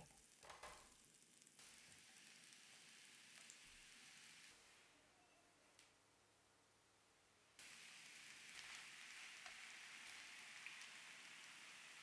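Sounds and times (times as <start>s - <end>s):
small crackles: 0.0s - 4.7s, 7.6s - 12.0s
food sizzling in frying pan: 0.0s - 4.8s, 7.6s - 12.0s.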